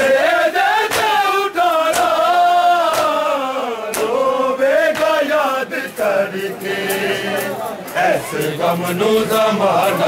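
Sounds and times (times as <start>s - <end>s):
men chanting a lament: 0.0s - 10.0s
chest-beating slaps: 0.8s - 3.3s, 3.9s - 4.2s.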